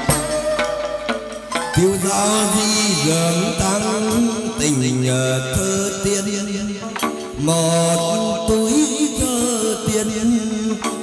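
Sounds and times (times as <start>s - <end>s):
moon lute: 0.0s - 11.0s
sharp percussion strikes: 0.0s - 11.0s.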